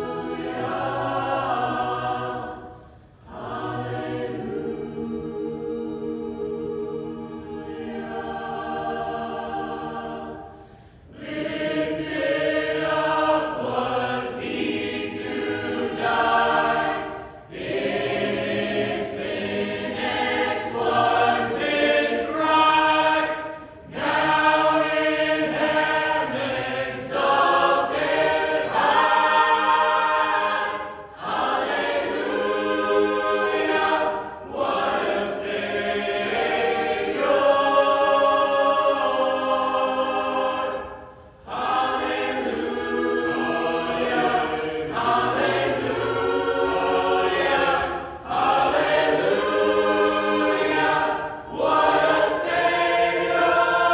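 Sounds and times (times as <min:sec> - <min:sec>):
mixed choir singing: 0:00.0 - 0:53.9.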